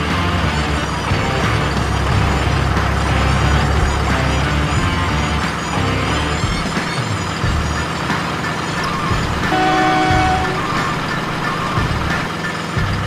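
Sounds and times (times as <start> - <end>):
background music: 0.0 - 13.0
truck engine rumble: 0.0 - 13.0
steady tone: 7.4 - 12.4.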